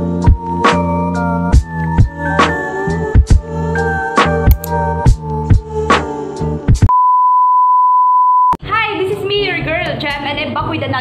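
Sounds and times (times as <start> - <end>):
high steady beep: 6.9 - 8.6
woman talking: 8.6 - 11.0.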